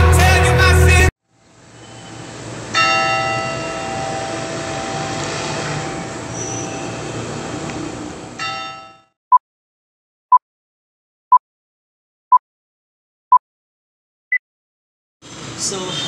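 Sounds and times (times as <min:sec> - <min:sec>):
outdoor background noise: 0:01.2 - 0:08.7
short electronic beep: 0:01.8 - 0:02.2
church bell ringing: 0:02.0 - 0:07.3, 0:08.4 - 0:09.1.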